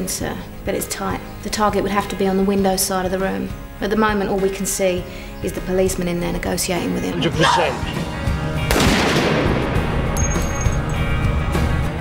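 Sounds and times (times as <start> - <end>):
background music: 0.0 - 12.0
rifle shot echoing: 8.7 - 10.1.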